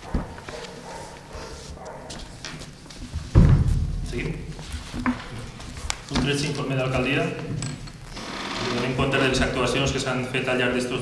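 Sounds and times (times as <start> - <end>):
microphone handling knocks and rubbing: 2.2 - 9.6.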